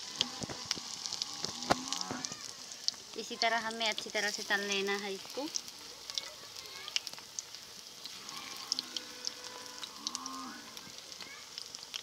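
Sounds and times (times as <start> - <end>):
deep-frying in hot oil: 0.0 - 12.0
oil popping and crackling: 0.0 - 12.0.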